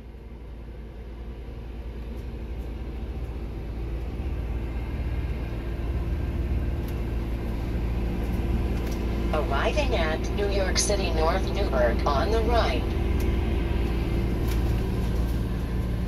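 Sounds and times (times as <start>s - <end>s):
motorhome engine and road rumble: 0.0s - 16.0s.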